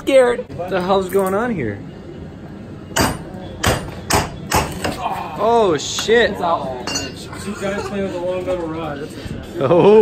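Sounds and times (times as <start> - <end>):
hammer striking metal: 2.9 - 5.0.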